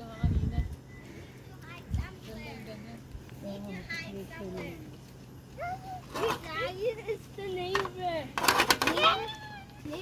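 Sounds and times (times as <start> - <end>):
young children calling and chattering: 0.0 - 10.0.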